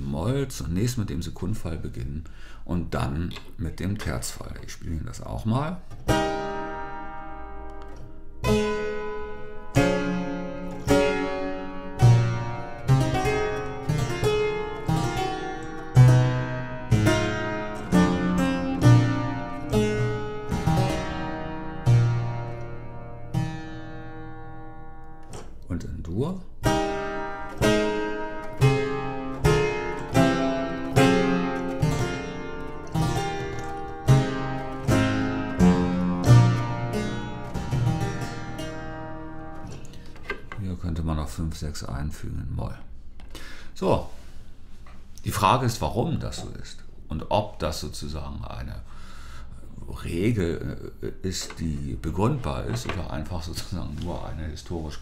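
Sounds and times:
harpsichord plucked chords: 0:05.8 - 0:25.6, 0:26.4 - 0:40.8.

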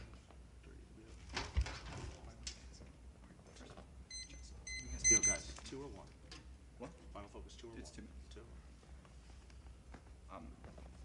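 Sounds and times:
low room hum: 0:00.0 - 0:11.0
high electronic beeps: 0:04.1 - 0:05.5.

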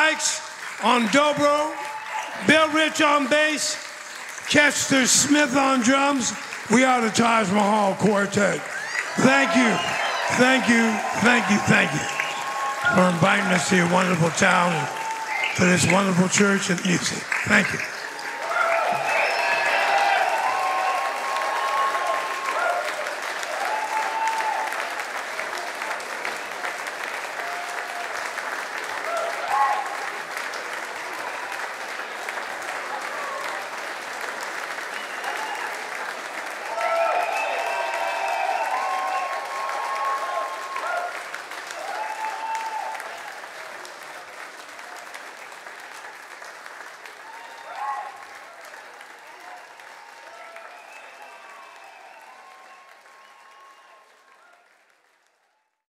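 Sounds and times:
audience applauding: 0:00.0 - 0:55.8.

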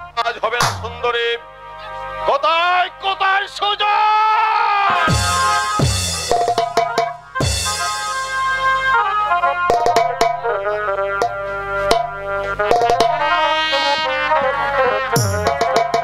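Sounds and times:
drums: 0:00.6 - 0:01.1, 0:04.9 - 0:10.6, 0:11.2 - 0:16.0
brass-like wind instrument melody: 0:01.2 - 0:03.4, 0:04.9 - 0:16.0
booming drum hit falling in pitch: 0:05.1 - 0:08.6, 0:15.2 - 0:16.0
sharp percussion strikes: 0:05.1 - 0:08.9, 0:11.2 - 0:13.3, 0:15.2 - 0:16.0.

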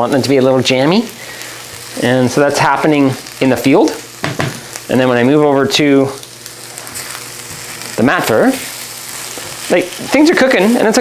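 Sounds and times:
onions sizzling in pan: 0:00.0 - 0:11.0.

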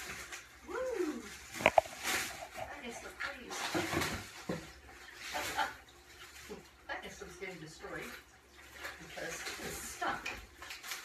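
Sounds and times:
plastic packing rustling: 0:00.0 - 0:06.6, 0:09.5 - 0:11.0.

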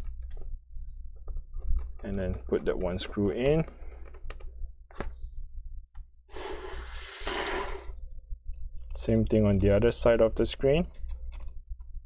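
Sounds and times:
breathy exhale: 0:06.3 - 0:08.0.

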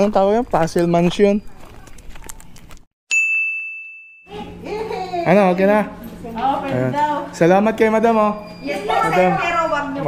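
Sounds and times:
faint outdoor background: 0:00.0 - 0:10.0
bright bell-like ding: 0:03.1 - 0:04.5.

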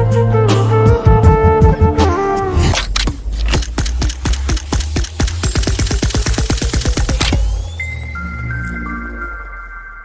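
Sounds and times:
sharp clicks rolling: 0:02.8 - 0:07.5.

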